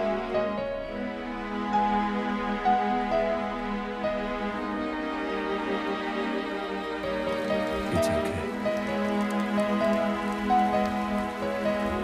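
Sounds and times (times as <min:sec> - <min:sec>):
slow orchestral music: 0:00.0 - 0:12.0.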